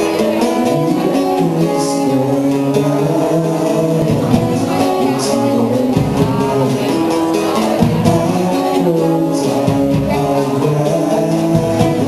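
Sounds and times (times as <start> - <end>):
acoustic guitars strumming: 0.0 - 12.0.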